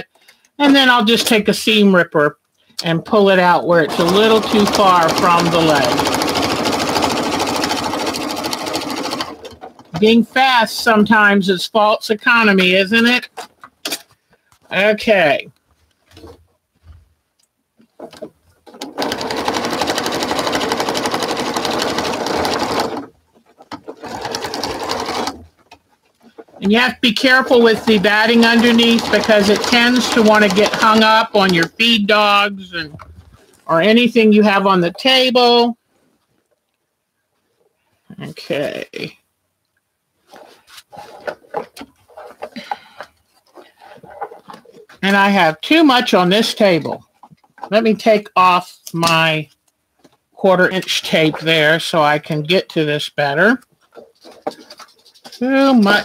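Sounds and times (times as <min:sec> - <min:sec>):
sewing machine stitching: 0:03.3 - 0:10.0, 0:18.0 - 0:32.1, 0:53.9 - 0:56.0
fabric rustling: 0:40.1 - 0:45.0, 0:53.7 - 0:56.0.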